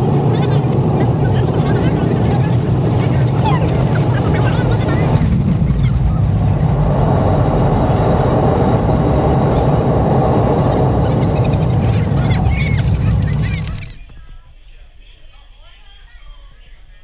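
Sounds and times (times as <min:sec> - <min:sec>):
jet engines roaring: 0:00.0 - 0:14.1
wheels rolling on runway: 0:00.0 - 0:14.3.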